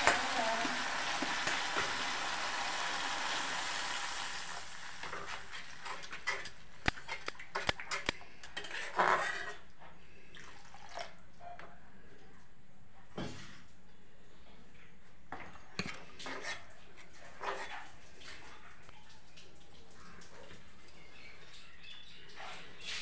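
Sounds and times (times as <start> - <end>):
gravy sizzling in a pan: 0.0 - 6.6
sharp metal clicks and knocks: 6.0 - 8.6
metal ladle scraping a pan: 7.9 - 9.7.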